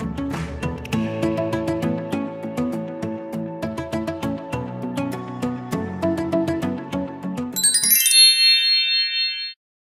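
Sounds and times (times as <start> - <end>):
bright chime: 7.6 - 9.6.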